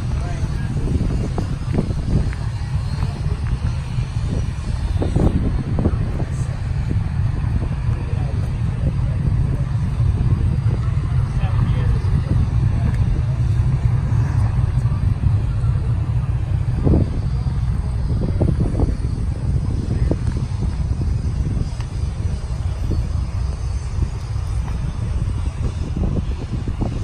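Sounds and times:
low rumble: 0.0 - 27.0
people talking: 0.0 - 27.0.

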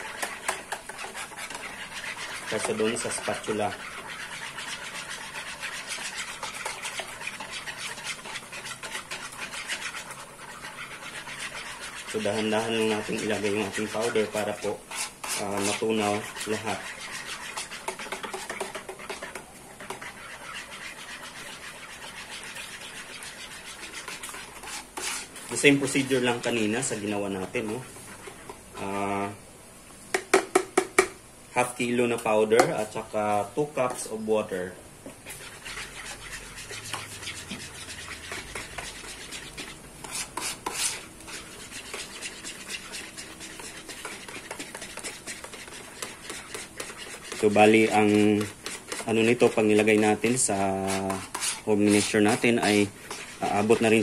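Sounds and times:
whisk scraping plastic bowl: 0.0 - 29.3, 32.2 - 54.0.

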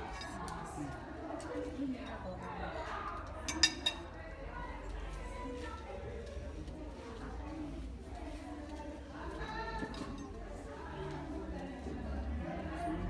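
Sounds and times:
murmured voices: 0.0 - 13.0
cutlery clinking on plate: 3.4 - 4.1.

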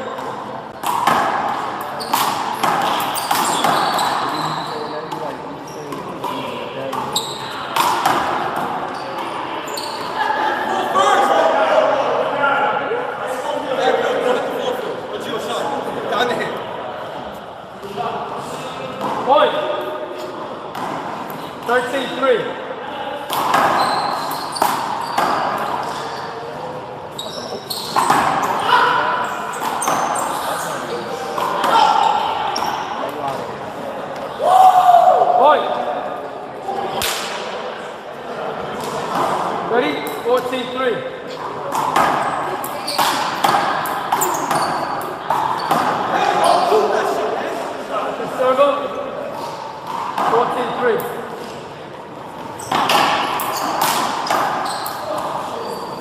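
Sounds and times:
players' voices: 0.0 - 56.0.

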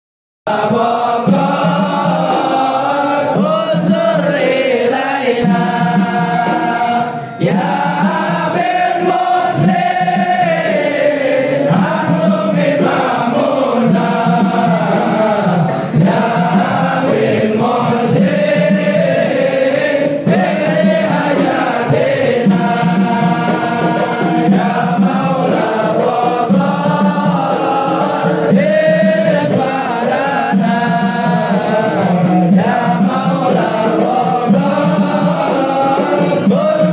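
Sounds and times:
crowd of men chanting: 0.5 - 36.9.

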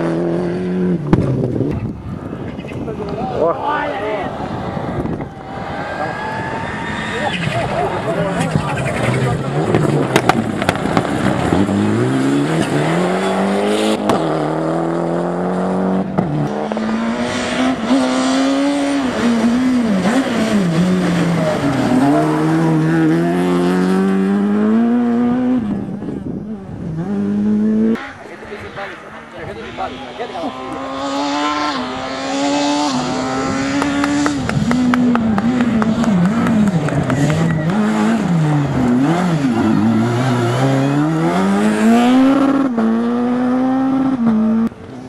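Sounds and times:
rally car engines revving: 0.0 - 45.0.

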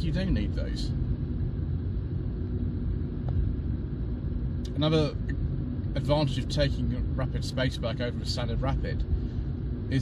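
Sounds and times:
car engine and tyre rumble: 0.0 - 10.0
faint steady hum: 0.0 - 10.0.

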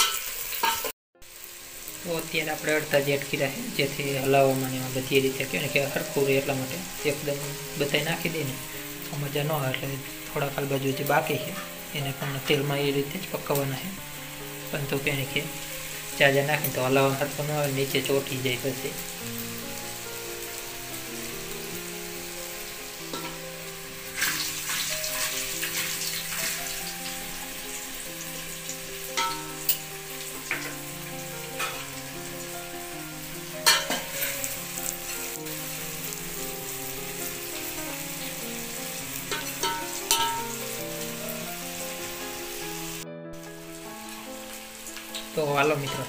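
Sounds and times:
oil popping and crackling: 0.0 - 0.9, 23.0 - 32.5, 33.5 - 42.8, 44.0 - 46.0
dumplings frying in hot oil: 0.0 - 43.0, 44.0 - 46.0.

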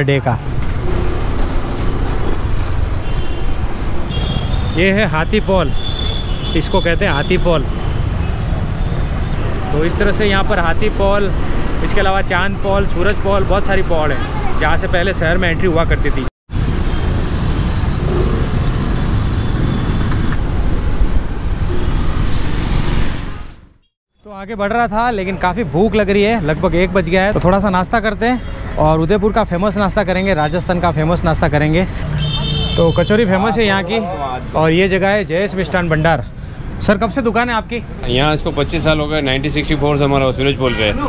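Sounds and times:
road traffic: 0.0 - 41.0.

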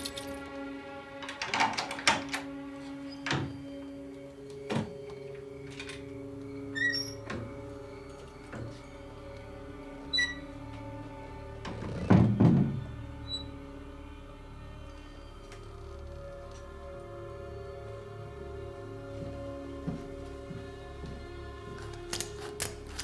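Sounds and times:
film score sustained notes: 0.0 - 23.0
wooden door thunking shut: 11.7 - 12.9.

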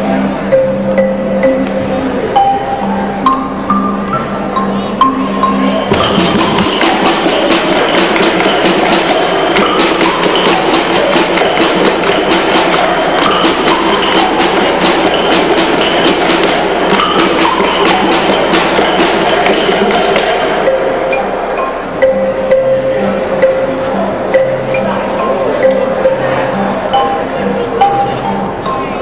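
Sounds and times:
crowd hum: 0.0 - 29.0
children clapping a rhythm: 5.9 - 20.9.

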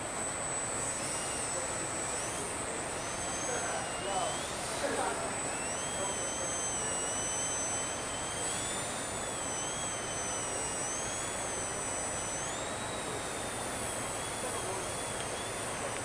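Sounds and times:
model airplane motor whining: 0.0 - 16.0.

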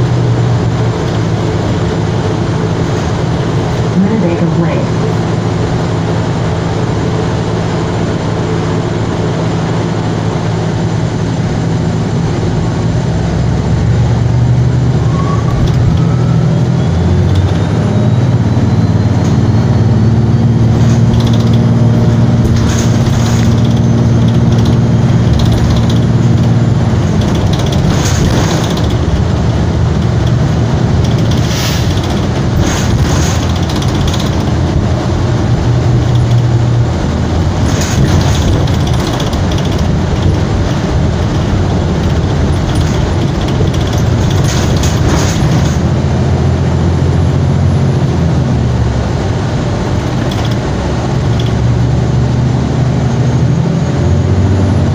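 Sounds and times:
bus drivetrain hum: 0.0 - 54.9
road noise: 0.0 - 54.9
interior fittings rattling: 20.7 - 35.0, 37.4 - 45.9.

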